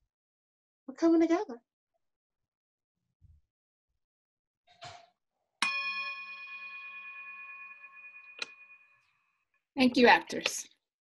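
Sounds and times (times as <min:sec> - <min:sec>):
metal chime ringing: 0:05.6 - 0:09.0.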